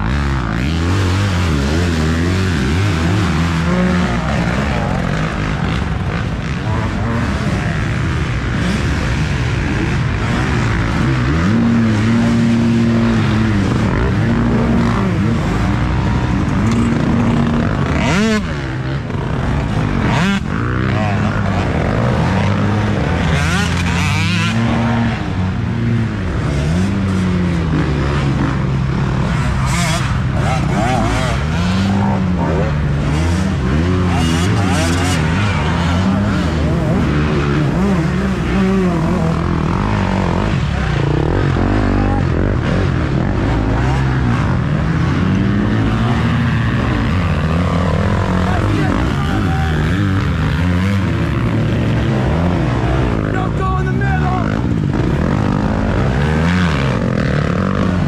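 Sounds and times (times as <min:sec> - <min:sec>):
dirt bike engines revving: 0:00.0 - 0:58.0.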